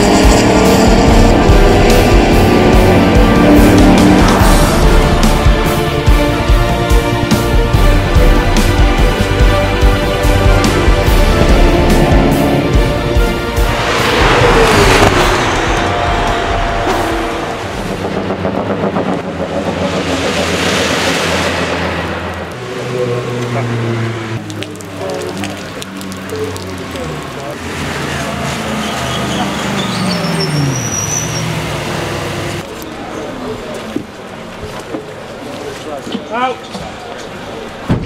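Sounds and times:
race cars passing at speed: 0:00.0 - 0:06.1, 0:10.0 - 0:33.6
background music: 0:00.0 - 0:22.3.

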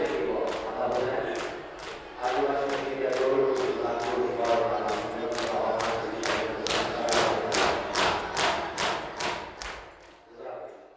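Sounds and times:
crowd voices: 0:00.0 - 0:10.9
men slapping chests in unison: 0:00.4 - 0:10.1.

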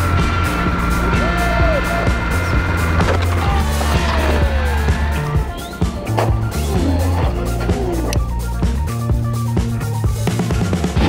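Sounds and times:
small wheels rolling on asphalt: 0:00.0 - 0:07.8
background music with steady beat: 0:00.0 - 0:11.0.

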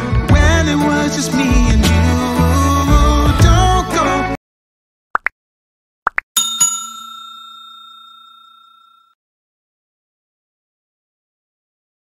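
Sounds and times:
bell ding: 0:06.4 - 0:09.2.

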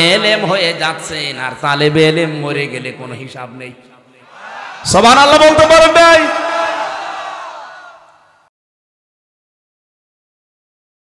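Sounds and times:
man's voice over public address: 0:00.0 - 0:06.8
venue background noise: 0:04.2 - 0:08.4.

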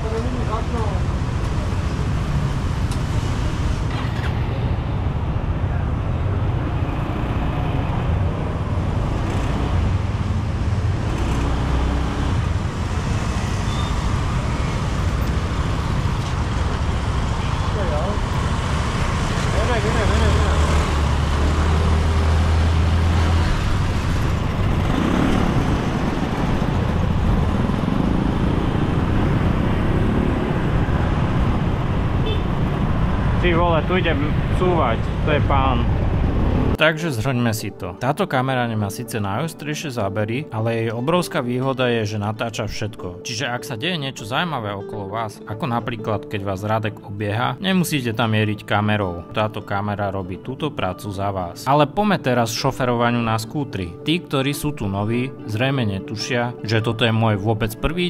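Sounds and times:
street traffic noise: 0:00.0 - 0:58.0.

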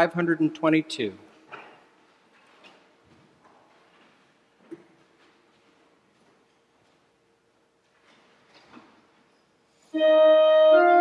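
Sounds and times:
rustling and shuffling: 0:01.3 - 0:09.9.

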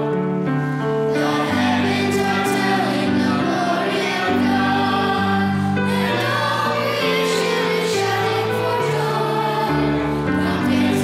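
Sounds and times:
children's choir singing a hymn: 0:00.0 - 0:11.0.

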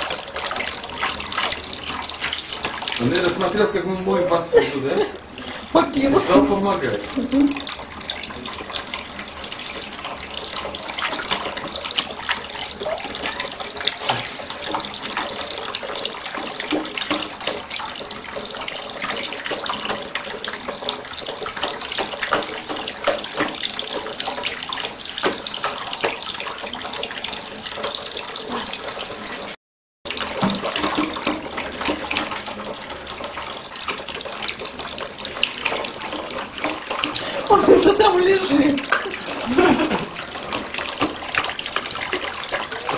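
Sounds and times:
tap water splashing into sink: 0:00.0 - 0:29.0, 0:30.1 - 0:42.9.

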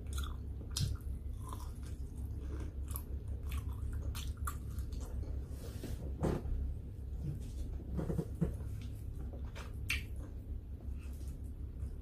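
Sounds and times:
person chewing food: 0:00.0 - 0:05.5
steady low hum: 0:00.0 - 0:12.0
wet mouth clicks and smacks: 0:09.8 - 0:10.2.

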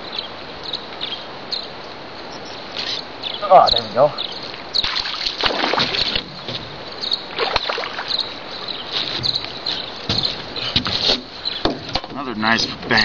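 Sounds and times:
water splashing: 0:02.7 - 0:13.0
rustling and handling noises: 0:08.5 - 0:13.0.

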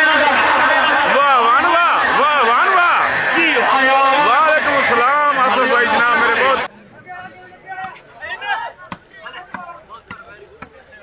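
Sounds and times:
men shouting: 0:00.0 - 0:06.7.

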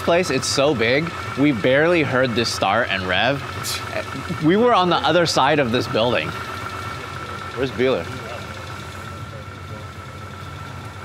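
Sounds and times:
car engine idling: 0:00.0 - 0:11.0
thin steady whine: 0:00.0 - 0:11.0.

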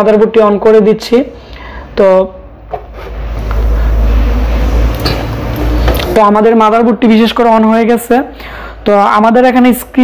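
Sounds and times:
computer fans humming: 0:01.9 - 0:08.3.

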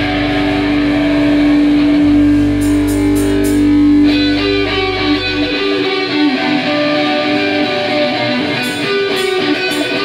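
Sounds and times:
electric guitar ringing note: 0:00.0 - 0:10.0.

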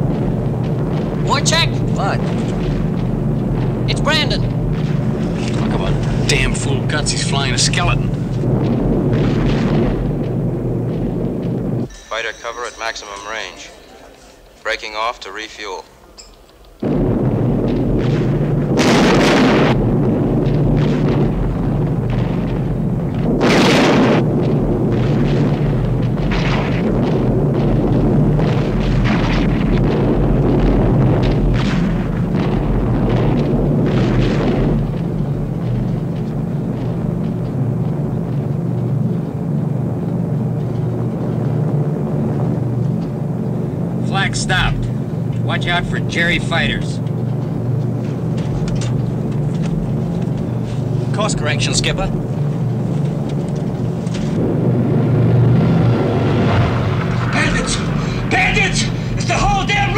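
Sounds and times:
gunfire: 0:00.0 - 0:11.9, 0:16.8 - 0:59.9
heavy explosions: 0:00.0 - 0:14.6, 0:16.7 - 0:59.9
piston aircraft engines droning: 0:00.0 - 0:23.5, 0:24.2 - 0:59.9.

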